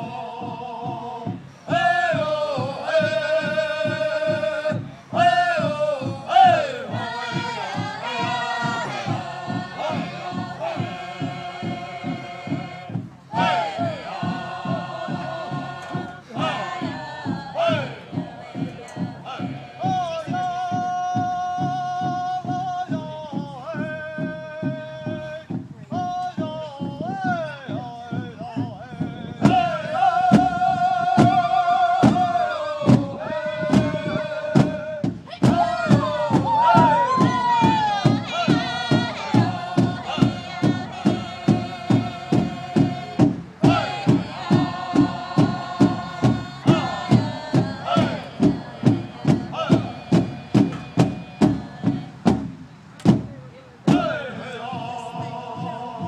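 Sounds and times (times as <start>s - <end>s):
chanted singing in high voices: 0.0s - 25.6s, 26.4s - 52.5s, 53.9s - 56.0s
big drum beaten: 0.0s - 56.0s.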